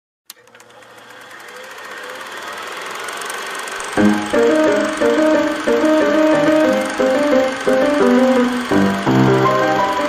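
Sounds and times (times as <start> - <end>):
click: 0.3 - 0.8
rapid rattling buzzing noise: 1.1 - 10.0
podcast intro music: 4.0 - 10.0.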